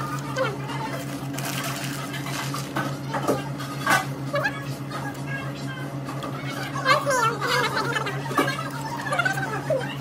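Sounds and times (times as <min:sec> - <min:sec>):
low electrical hum: 0:00.0 - 0:10.0
paper wrapper crinkling: 0:00.8 - 0:02.8.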